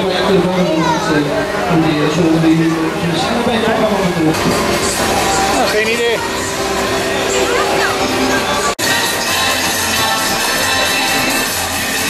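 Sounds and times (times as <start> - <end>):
people talking: 0.0 - 11.9.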